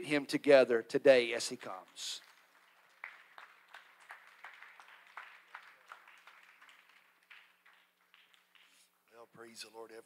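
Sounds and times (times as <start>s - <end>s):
faint scattered hand clapping: 1.8s - 9.0s.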